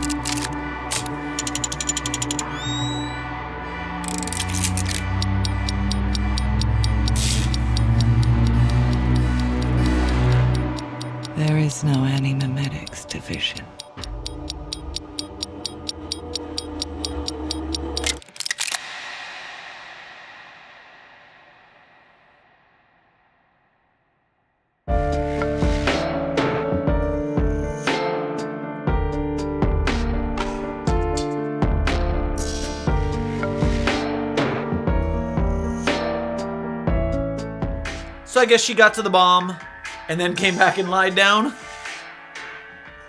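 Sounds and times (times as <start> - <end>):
steady ticking: 1.4 - 2.5, 4.0 - 18.2
rapid mechanical clicking: 4.0 - 18.7.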